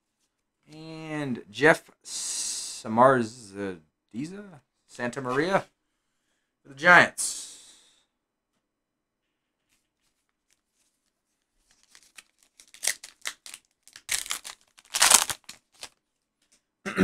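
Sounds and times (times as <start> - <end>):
card wrapper crinkling and ripping: 11.6 - 16.0.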